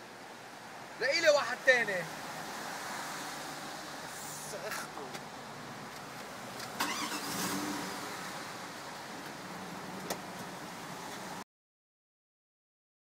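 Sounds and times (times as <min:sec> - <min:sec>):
car engine starting and running: 0:04.6 - 0:11.4.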